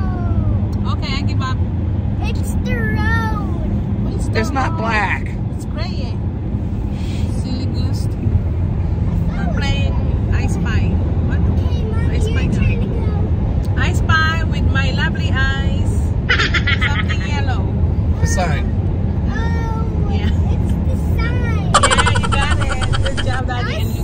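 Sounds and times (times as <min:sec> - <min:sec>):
road and engine rumble in car: 0:00.0 - 0:24.0
voices talking: 0:21.7 - 0:24.0.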